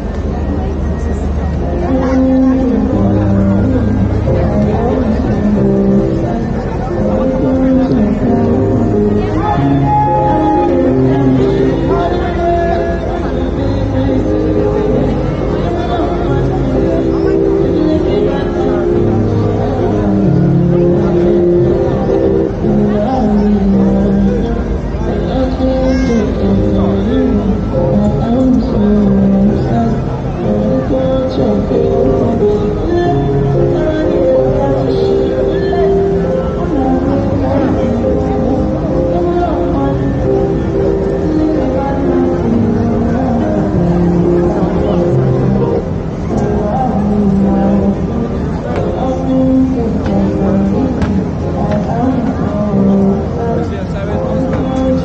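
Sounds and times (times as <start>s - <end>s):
crowd chatter: 0.0s - 55.0s
traffic rumble: 0.0s - 55.0s.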